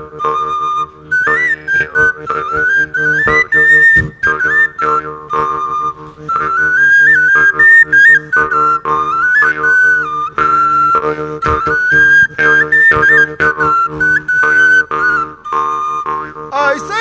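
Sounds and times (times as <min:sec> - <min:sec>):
wooden pipe playing folk tune: 0:00.0 - 0:17.0.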